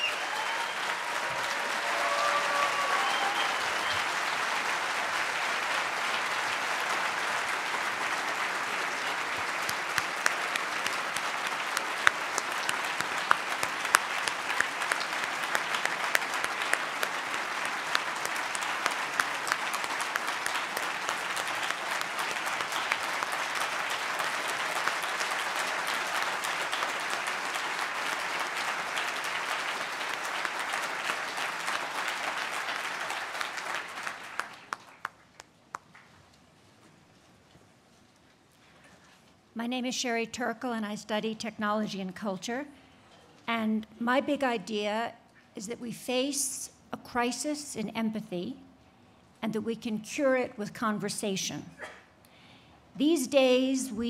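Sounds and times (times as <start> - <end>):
audience applauding: 0.0 - 36.1.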